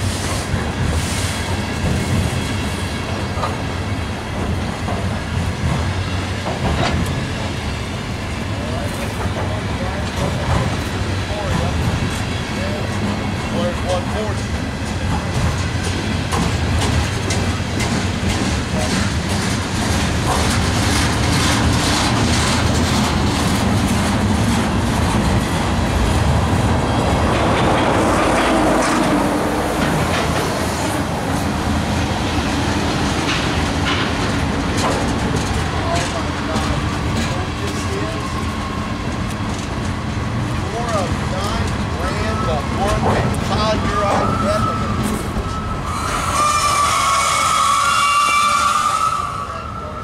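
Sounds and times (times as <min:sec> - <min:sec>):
sharp clacks of train cars: 0:00.0 - 0:49.5
train wheels rumbling on rails: 0:00.0 - 0:50.0
high-pitched wheel squeal: 0:43.9 - 0:50.0.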